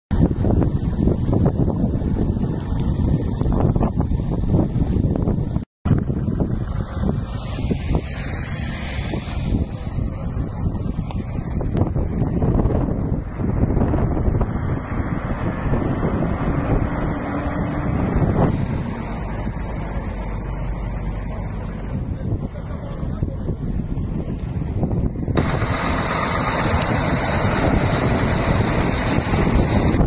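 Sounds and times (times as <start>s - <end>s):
road vehicle noise: 0.1s - 30.0s
wind buffeting microphone: 0.1s - 30.0s.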